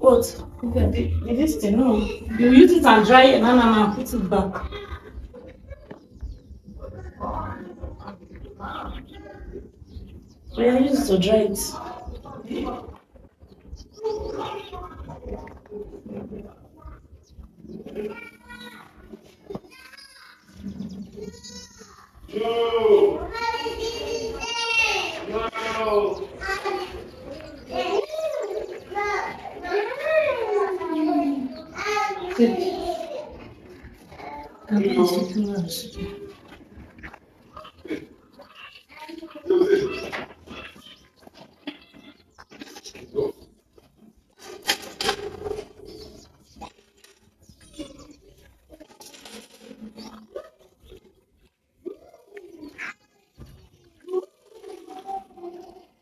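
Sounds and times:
goat bleating: 21.2s - 22.1s.

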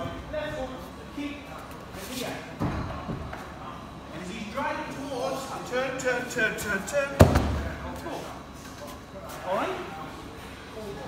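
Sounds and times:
voices talking in a hall: 0.0s - 11.0s.

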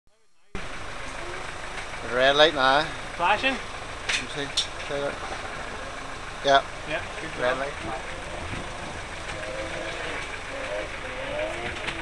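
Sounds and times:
motorcycle engine idling: 0.6s - 12.0s
steady rushing noise: 0.6s - 12.0s.

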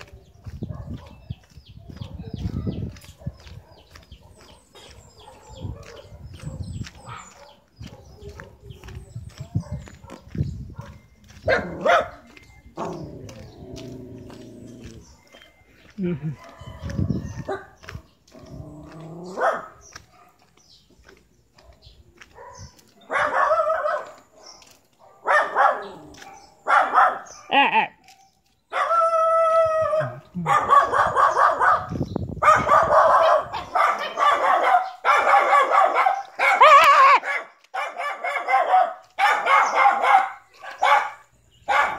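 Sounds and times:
dog barking: 0.7s - 1.3s, 1.9s - 8.6s, 9.6s - 12.2s, 16.4s - 18.0s, 18.9s - 20.6s, 21.6s - 27.5s, 28.7s - 29.1s, 30.0s - 41.9s.

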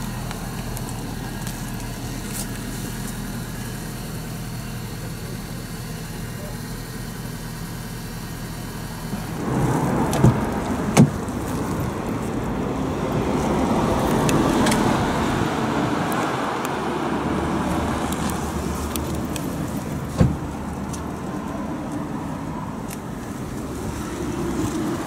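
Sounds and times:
road traffic noise: 0.0s - 25.0s.

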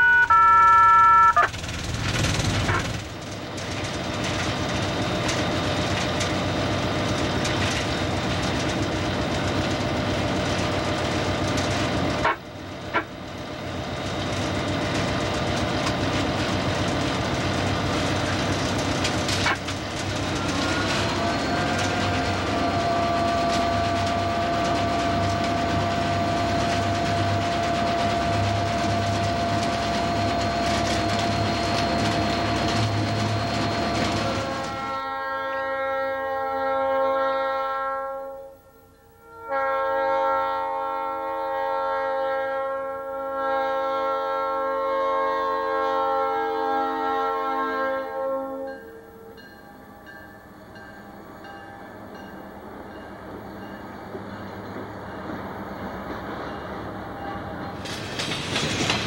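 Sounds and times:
locomotive air horn: 0.0s - 1.6s, 20.5s - 30.1s, 34.2s - 49.4s
locomotive rumble and clatter: 0.2s - 35.2s, 52.1s - 59.0s.

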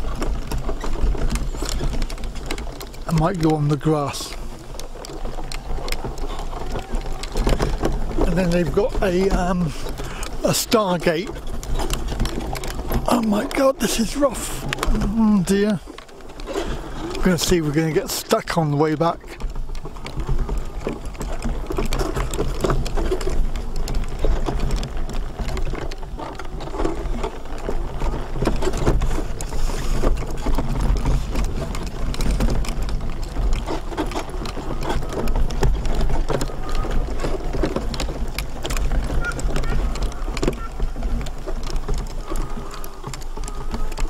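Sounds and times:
wheelchair rolling over grass: 0.0s - 44.0s.

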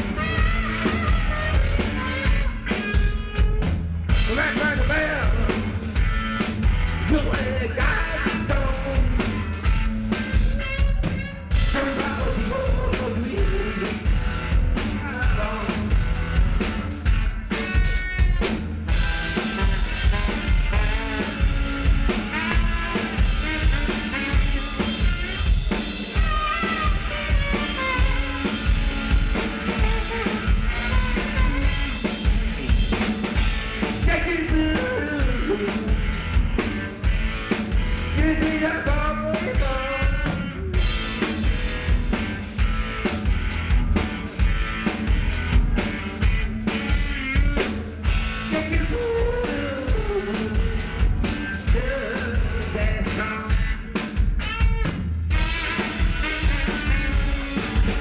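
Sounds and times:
saxophone: 0.0s - 3.6s, 17.6s - 42.4s, 55.3s - 58.0s
drum kit beat: 0.0s - 58.0s
electric guitar: 0.0s - 58.0s
live band playing: 0.0s - 58.0s
man singing: 4.1s - 6.0s, 6.9s - 9.7s, 10.3s - 16.2s, 33.8s - 36.3s, 38.0s - 41.0s, 48.3s - 54.1s.

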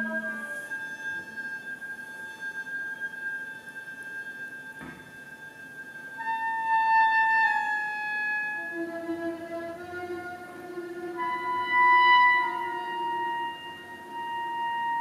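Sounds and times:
chamber ensemble playing: 0.0s - 15.0s.

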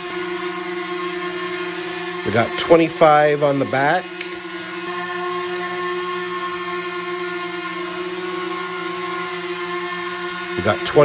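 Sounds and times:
drone propellers whining: 0.0s - 11.0s.

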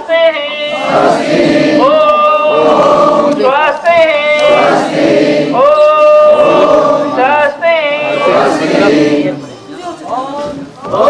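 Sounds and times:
crowd chanting in unison: 0.5s - 9.5s, 10.4s - 11.0s.

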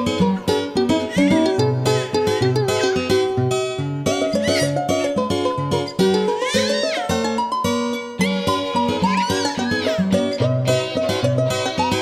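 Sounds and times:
instrumental lullaby music: 0.0s - 12.0s.

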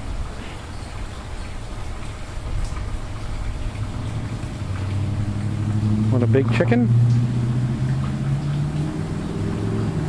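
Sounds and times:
vehicle engine hum: 3.1s - 10.0s.

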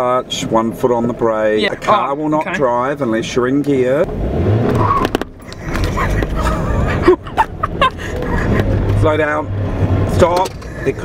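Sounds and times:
car engine hum inside cabin: 0.0s - 11.0s
people laughing: 5.4s - 9.0s.

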